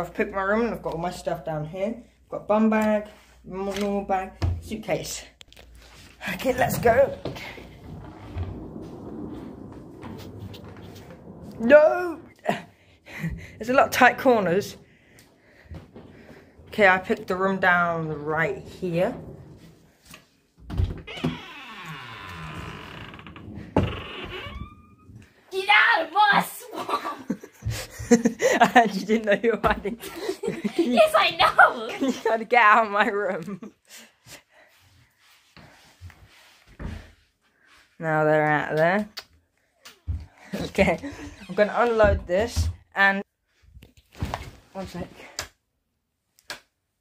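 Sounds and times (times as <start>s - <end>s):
wooden door creaking: 6.1s - 25.4s, 40.0s - 42.8s.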